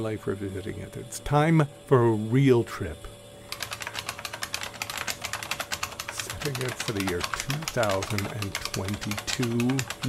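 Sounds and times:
rapid keyboard clicking: 3.5 - 10.0.

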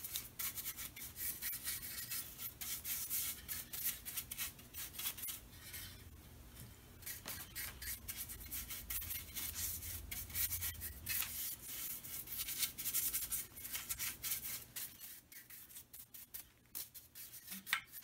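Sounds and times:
rasping brush strokes on wood: 0.0 - 6.0, 7.0 - 18.0.

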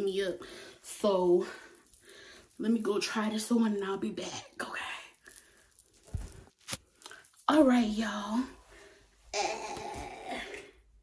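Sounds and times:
woman clearing her throat: 9.3 - 10.7.

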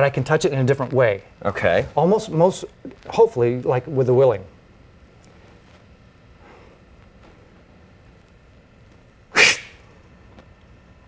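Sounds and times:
sharp puff of breath: 9.4 - 9.8.

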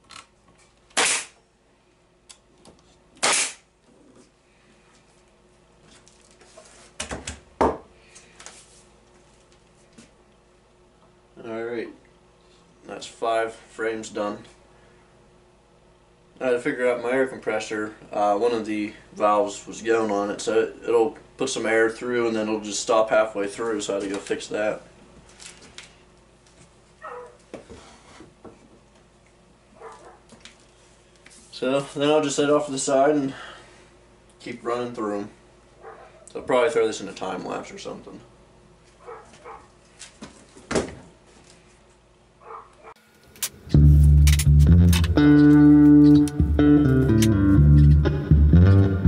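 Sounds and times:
pneumatic staple gun clicks: 0.9 - 1.4, 3.2 - 3.6
dog yelping: 27.0 - 27.4, 29.8 - 30.3, 35.8 - 36.3, 39.0 - 39.7, 42.4 - 43.0.

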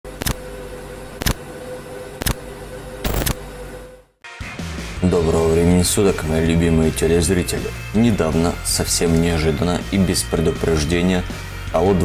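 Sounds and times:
low electronic hum: 0.1 - 4.2
sharp glitchy electronic hits: 3.0 - 3.4.

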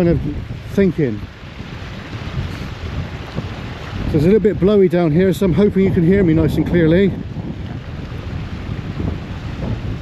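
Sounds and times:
stream running over rocks: 0.0 - 10.0
wind buffeting microphone: 0.0 - 10.0.

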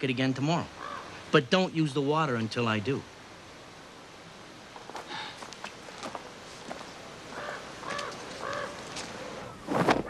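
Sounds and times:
bird calling: 0.6 - 1.3, 4.8 - 9.7.

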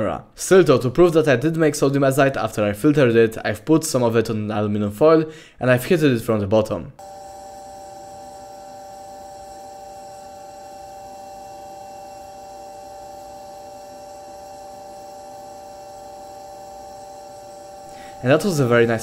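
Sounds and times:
steady hum of held tones: 7.0 - 19.0.

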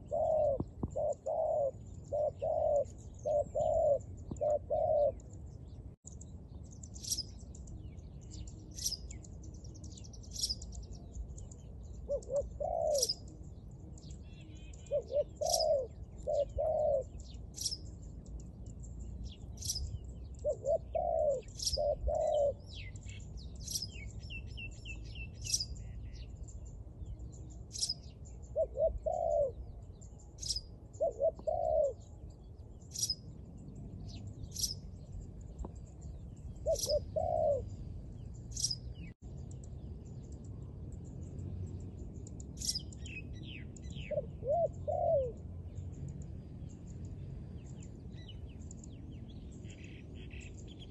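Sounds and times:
dove cooing: 0.0 - 5.2, 12.0 - 13.3, 14.8 - 17.8, 19.6 - 23.8, 28.5 - 29.8, 30.4 - 32.1, 36.6 - 37.8, 43.5 - 45.5
small bird chirping: 0.0 - 50.9.

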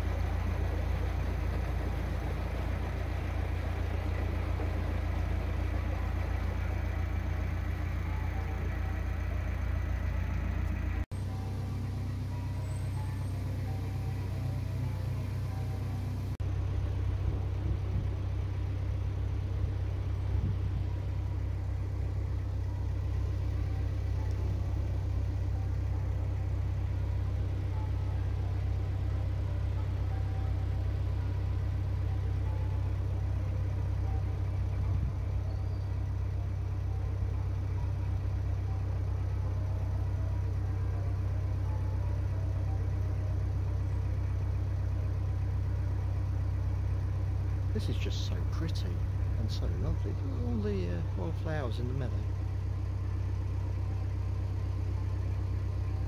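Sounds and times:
boat diesel engine running: 0.0 - 56.0.

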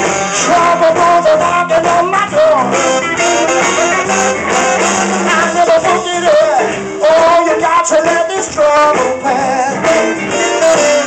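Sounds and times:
live blues band playing: 0.0 - 11.0.

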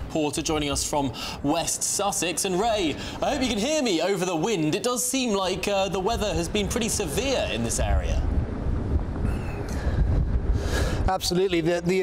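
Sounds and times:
strong wind buffeting microphone: 5.2 - 12.0.

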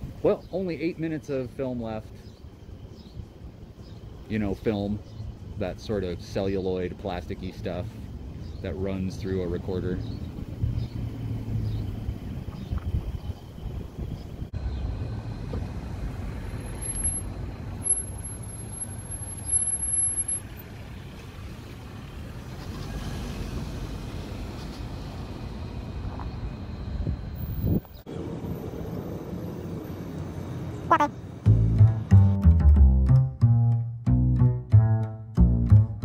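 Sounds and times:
cars passing and idling: 0.0 - 32.3.

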